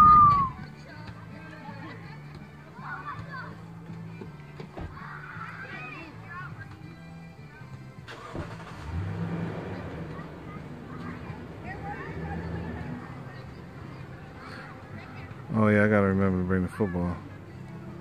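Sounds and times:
faint distant voices: 0.0s - 18.0s.

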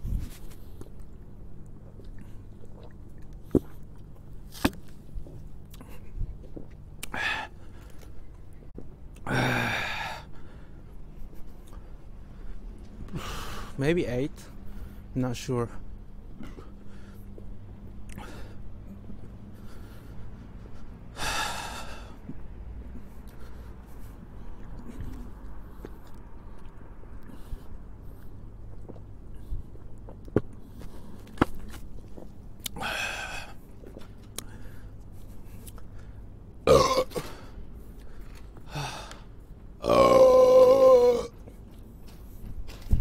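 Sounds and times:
man burping: 36.6s - 37.4s, 39.8s - 41.4s.

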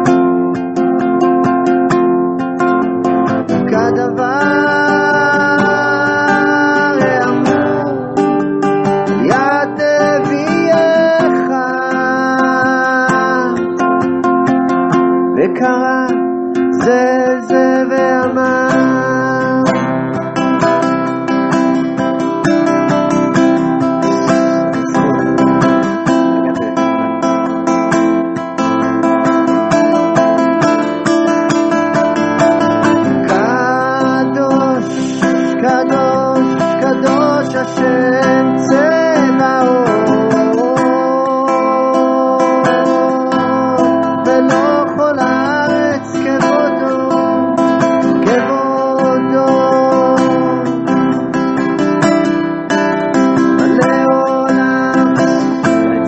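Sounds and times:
acoustic guitar strumming: 0.0s - 56.0s
wordless singing: 3.2s - 14.1s, 15.4s - 21.0s, 22.5s - 26.8s, 32.4s - 51.8s, 53.2s - 56.0s.

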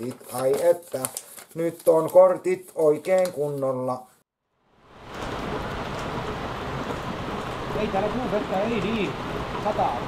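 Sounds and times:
steady rain falling: 4.8s - 10.0s.

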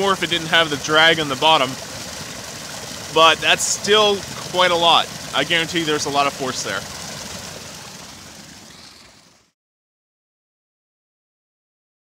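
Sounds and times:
water rushing onto waterwheel: 0.0s - 9.6s.

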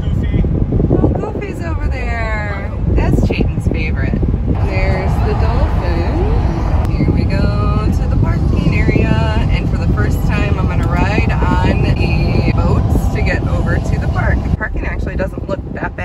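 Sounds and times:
road and engine rumble in car: 0.0s - 16.0s.

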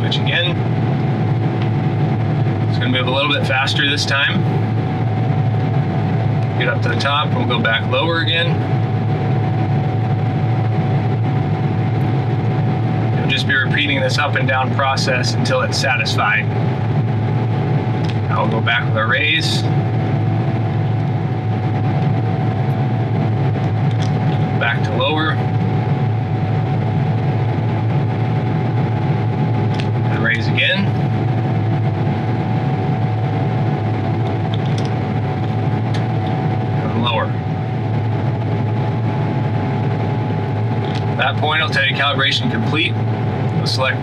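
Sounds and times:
combine engine drone: 0.0s - 44.0s.

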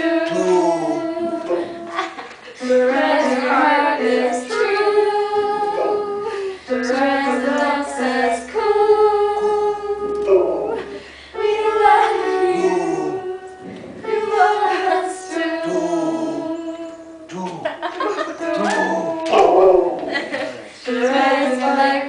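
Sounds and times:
woman and child singing: 0.0s - 17.4s, 18.3s - 19.5s, 20.8s - 22.0s.

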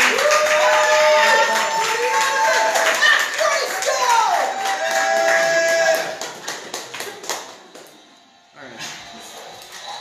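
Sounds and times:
crowd whooping and cheering: 0.0s - 7.4s
audience clapping: 0.0s - 8.0s.

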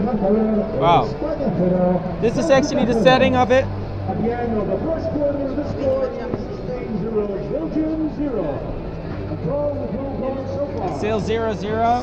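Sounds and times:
indistinct voices talking: 0.0s - 12.0s
steady low hum: 0.0s - 12.0s.

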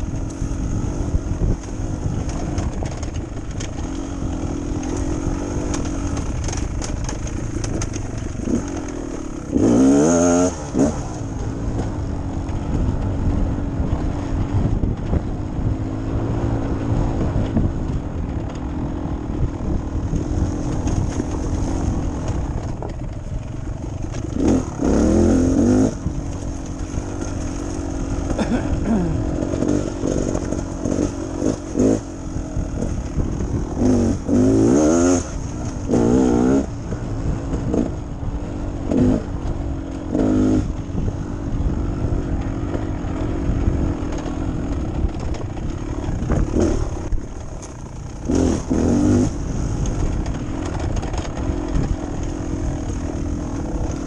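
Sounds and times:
dirt bike engine revving: 0.0s - 15.0s, 15.6s - 54.0s.

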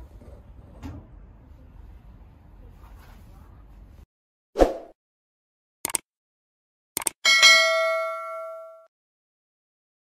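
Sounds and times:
quick clicks: 5.8s - 6.1s, 7.0s - 7.2s
notification bell ding: 7.3s - 8.9s.

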